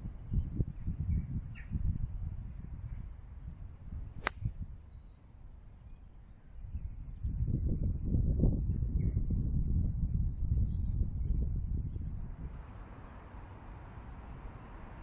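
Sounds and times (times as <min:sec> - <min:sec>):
wind buffeting microphone: 0:00.0 - 0:05.2, 0:05.9 - 0:15.0
golf club striking ball: 0:04.2 - 0:04.6.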